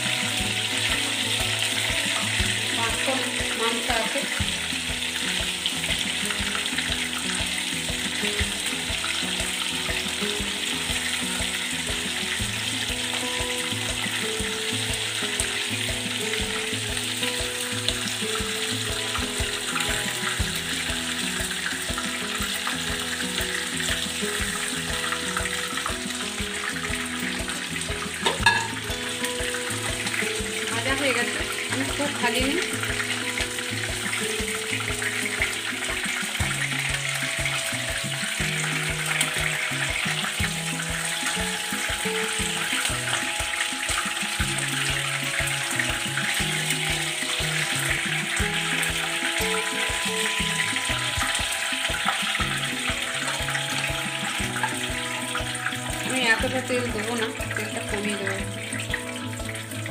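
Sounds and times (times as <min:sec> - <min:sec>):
background music with low notes: 0:00.0 - 0:59.9
chicken sizzling in hot oil: 0:00.0 - 0:59.9.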